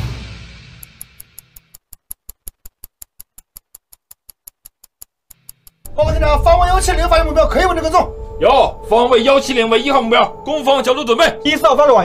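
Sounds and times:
rapid sharp ticking: 0.6 - 11.6.

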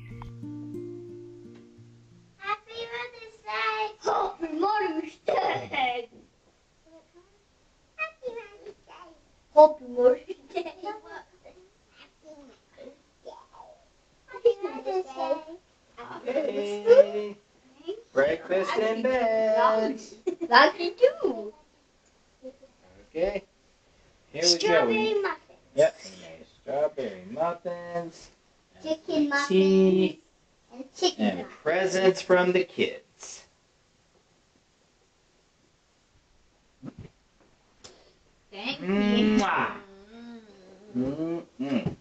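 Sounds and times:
person's voice exclaiming: 24.4 - 25.2, 38.8 - 39.8.

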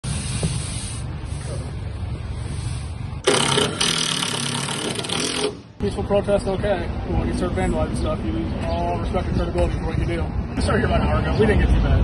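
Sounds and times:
loud rasping scrape: 3.2 - 5.7.

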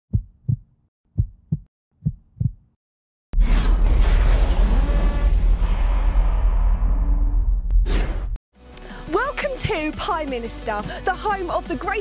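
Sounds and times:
heartbeat double thumps: 0.1 - 2.8
loud sudden hit: 3.4 - 7.7.

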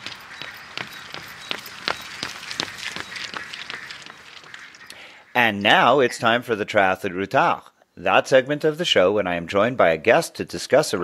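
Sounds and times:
footsteps of person running: 0.0 - 5.0.

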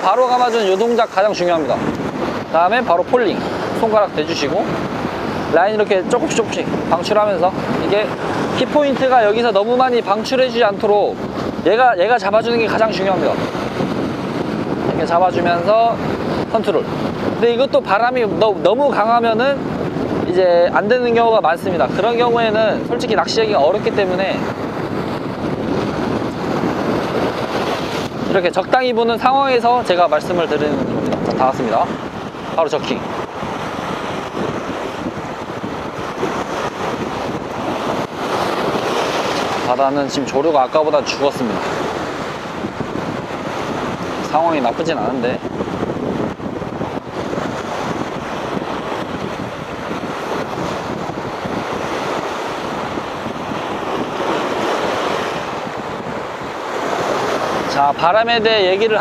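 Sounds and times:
waves breaking on rocks: 0.0 - 59.0
wind across microphone: 0.0 - 59.0.

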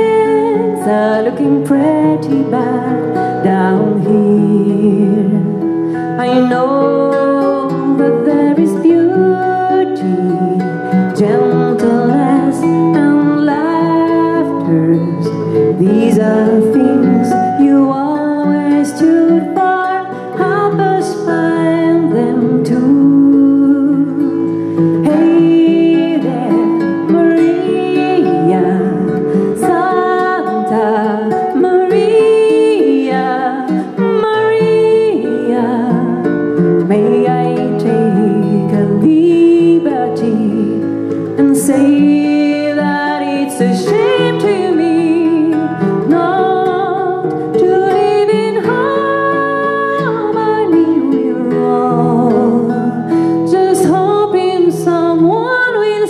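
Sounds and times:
acoustic guitar: 0.0 - 56.0
woman singing slow melody: 0.0 - 56.0.

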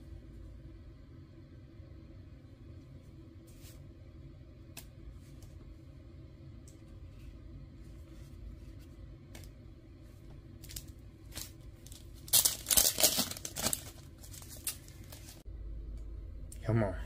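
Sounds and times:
plastic sleeves crinkling: 10.6 - 15.4.

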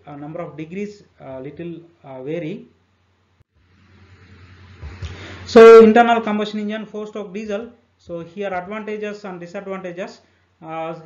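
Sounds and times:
low steady hum: 0.0 - 11.0
even hiss: 3.6 - 11.0.

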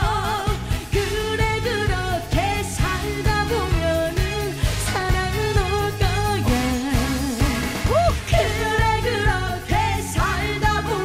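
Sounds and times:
backing track with steady beat: 0.0 - 11.0
woman singing with vibrato: 0.0 - 11.0.

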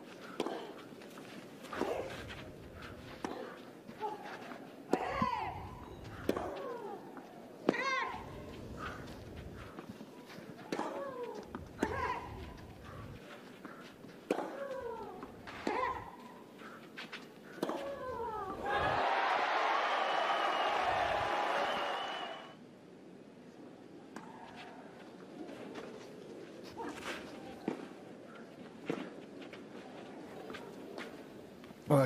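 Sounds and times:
tennis ball hit by racquet: 6.2 - 7.0, 10.6 - 13.0, 13.6 - 16.1, 17.5 - 18.8
crowd cheering and applauding: 18.6 - 22.6.

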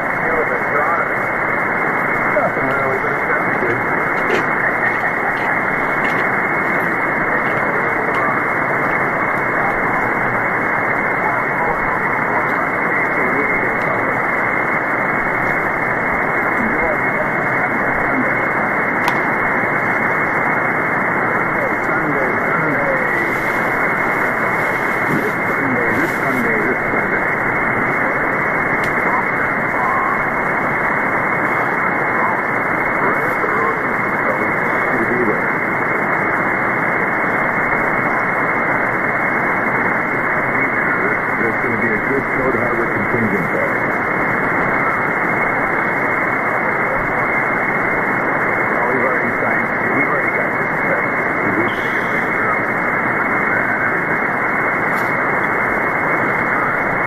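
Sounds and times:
radio static hiss: 0.0 - 57.0
weak radio voice: 0.0 - 57.0.

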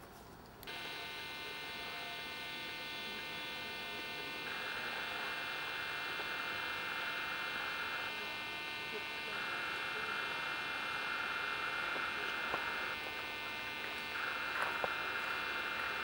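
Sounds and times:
high-pitched buzz: 0.7 - 16.0.

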